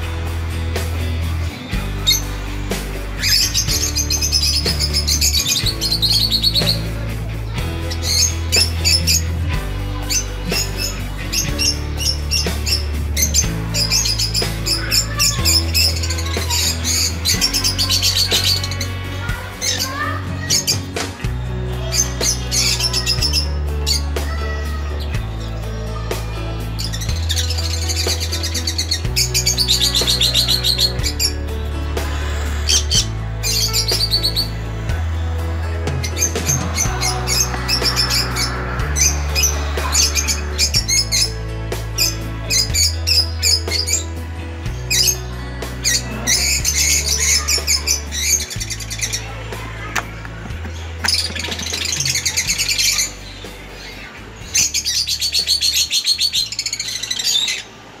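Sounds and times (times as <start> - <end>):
background music with bass: 0.0 - 58.0.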